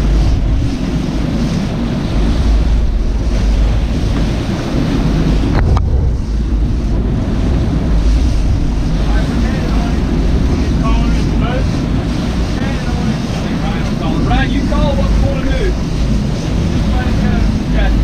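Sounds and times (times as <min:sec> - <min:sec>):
boat engines running: 0:00.0 - 0:18.0
churning boat wake: 0:00.0 - 0:18.0
wind buffeting microphone: 0:00.0 - 0:18.0.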